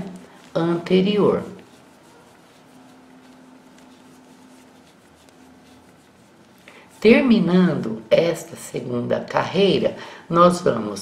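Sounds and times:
crochet hook rubbing and ticking: 0:00.0 - 0:08.7
faint steady hum: 0:00.0 - 0:11.0.

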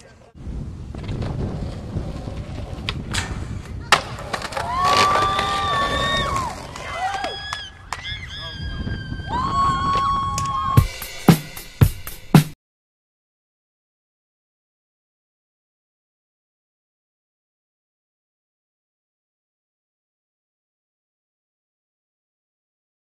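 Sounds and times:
skateboard wheels rolling on concrete: 0:00.0 - 0:10.9.

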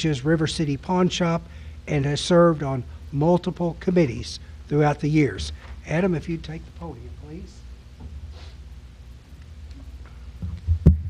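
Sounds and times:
sound system hum: 0:00.0 - 0:11.0
microphone handling thumps: 0:10.4 - 0:11.0.

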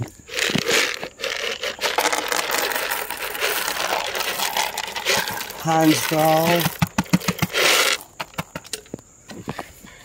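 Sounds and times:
corn kernels poured onto wood: 0:00.0 - 0:08.6.

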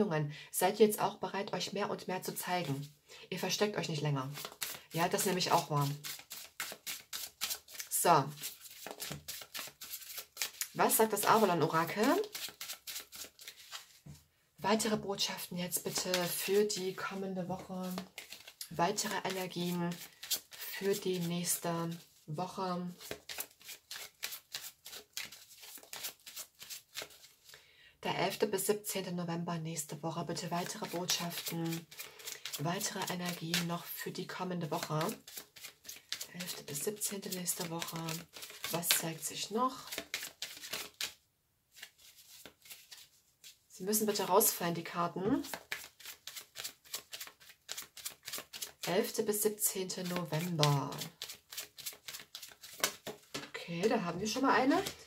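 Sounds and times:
cards shuffled by hand: 0:04.3 - 0:14.0, 0:17.6 - 0:22.1, 0:22.9 - 0:27.5, 0:30.6 - 0:33.7, 0:34.8 - 0:43.6, 0:45.4 - 0:48.9, 0:50.0 - 0:55.0.

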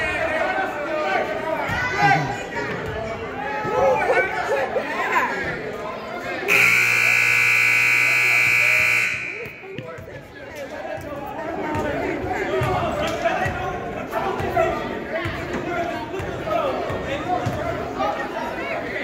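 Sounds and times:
crowd chatter: 0:00.0 - 0:19.0
scoreboard buzzer blaring: 0:06.5 - 0:09.8.

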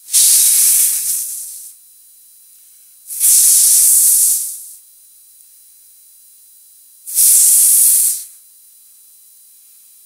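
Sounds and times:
loud burst of hiss: 0:00.0 - 0:01.8, 0:03.1 - 0:04.8, 0:07.1 - 0:08.4.

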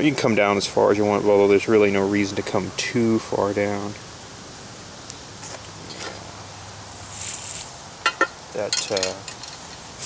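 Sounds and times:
solder scraping on soldering iron: 0:06.9 - 0:07.8.

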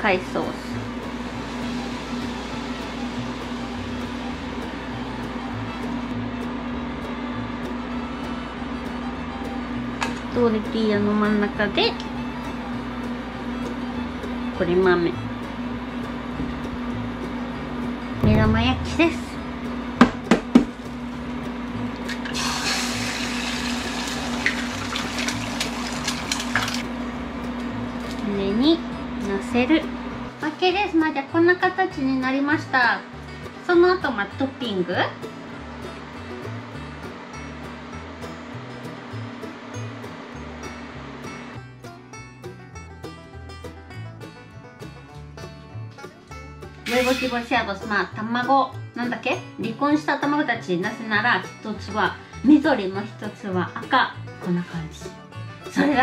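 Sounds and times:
induction hob hum: 0:00.0 - 0:56.0
salsa sizzling in hot oil: 0:00.8 - 0:05.4, 0:22.0 - 0:26.9, 0:46.8 - 0:47.5
egg sizzling in hot oil: 0:22.1 - 0:26.8.

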